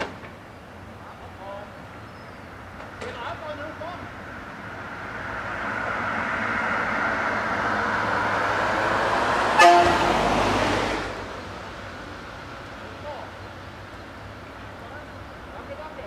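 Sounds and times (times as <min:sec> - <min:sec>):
diesel railcar engine running: 0:00.0 - 0:16.0
short horn toot: 0:09.6 - 0:10.2.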